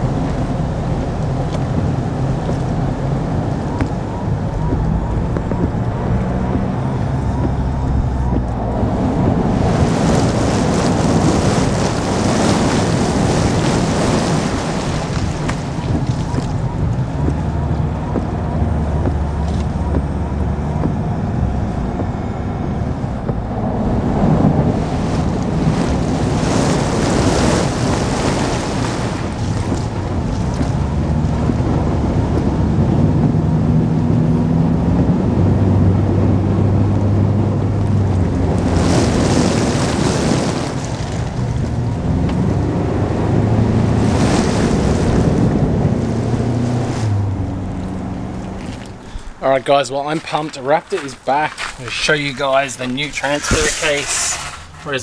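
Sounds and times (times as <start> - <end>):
low engine hum: 0.0 - 55.0
water spraying against vehicle: 0.0 - 55.0
tyres hissing through water: 50.3 - 55.0.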